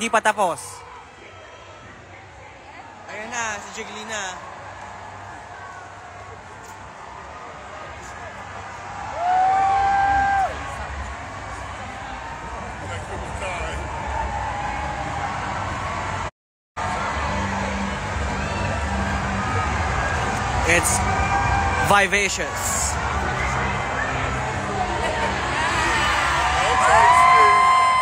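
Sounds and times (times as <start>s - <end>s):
crowd chattering and cheering: 0.0s - 28.0s
long high whoop: 9.1s - 10.6s.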